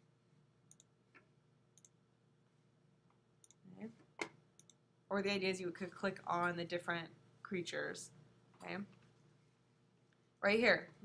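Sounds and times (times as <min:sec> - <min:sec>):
computer mouse clicks: 0:00.7 - 0:02.0, 0:03.4 - 0:03.6, 0:04.2 - 0:04.8.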